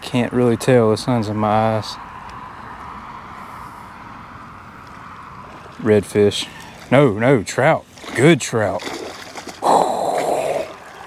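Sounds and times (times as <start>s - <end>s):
fish splashing in water: 7.8s - 11.0s.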